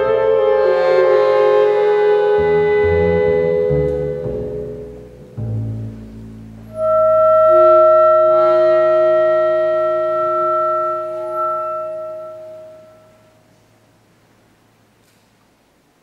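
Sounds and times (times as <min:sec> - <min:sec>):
flute: 0:00.0 - 0:04.8, 0:06.6 - 0:13.6
chamber ensemble holding a chord: 0:00.0 - 0:13.6
clarinet: 0:00.0 - 0:13.7.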